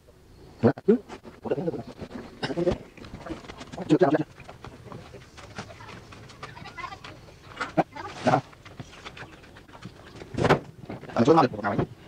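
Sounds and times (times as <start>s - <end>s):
birds chirping: 0.1s - 12.0s.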